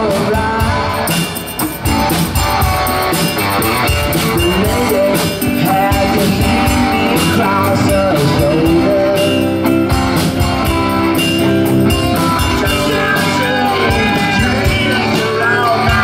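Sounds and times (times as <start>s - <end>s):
person singing lead vocal: 0.0s - 1.5s, 3.9s - 10.1s, 11.8s - 16.0s
drum-kit beat: 0.0s - 16.0s
electric bass: 0.0s - 16.0s
electric guitars: 0.0s - 16.0s.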